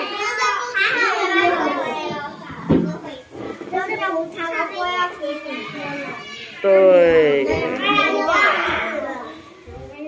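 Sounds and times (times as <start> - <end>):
young children chattering: 0.0 - 10.0
thump: 2.6 - 3.7.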